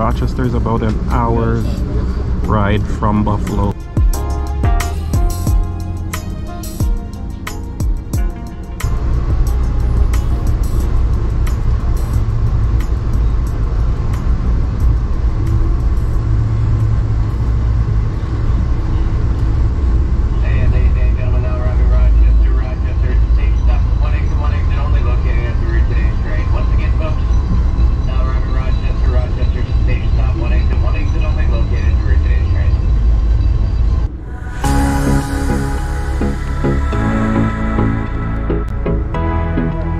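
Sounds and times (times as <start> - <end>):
indistinct voices: 0.0 - 3.8, 33.9 - 39.9
train rumbling inside car: 0.0 - 4.0, 7.0 - 34.7.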